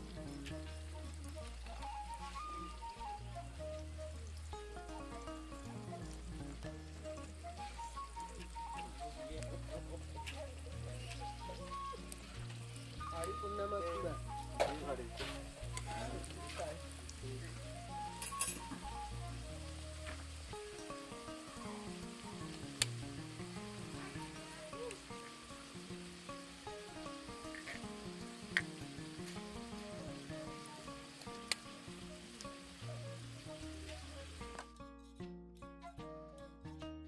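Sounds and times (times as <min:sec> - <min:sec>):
oil sizzling in pan: 0:00.0 - 0:34.7.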